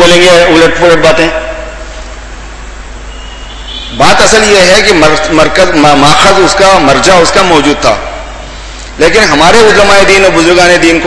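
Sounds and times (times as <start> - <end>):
faint high whine: 0.0 - 11.0
low hum: 0.9 - 6.6.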